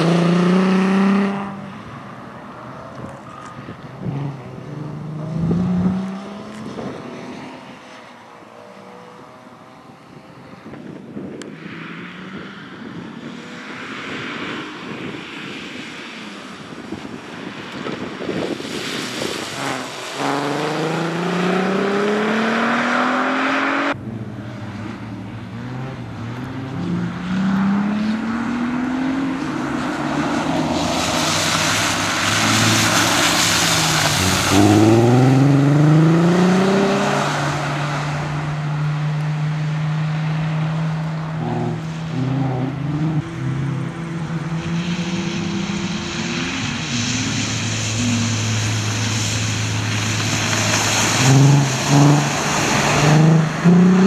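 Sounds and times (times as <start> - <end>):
car engine accelerating: 2.6 - 10.5, 19.2 - 54.0
tyres hissing on wet surface: 29.5 - 35.3, 44.5 - 53.8.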